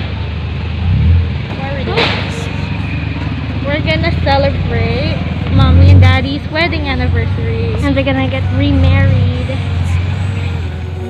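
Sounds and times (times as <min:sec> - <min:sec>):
vehicle engine idling: 0:00.0 - 0:11.0
woman talking: 0:01.5 - 0:02.7, 0:03.6 - 0:10.1.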